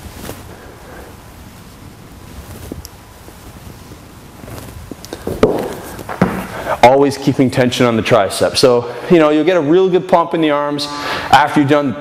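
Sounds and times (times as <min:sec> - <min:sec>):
thumps and scuffs on rubber floor: 0:04.6 - 0:06.7.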